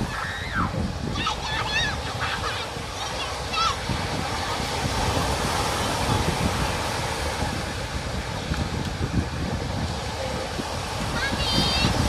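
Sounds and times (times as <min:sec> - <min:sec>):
ocean surf washing onto beach: 0:00.0 - 0:12.0
wind rumbling on microphone: 0:00.0 - 0:12.0.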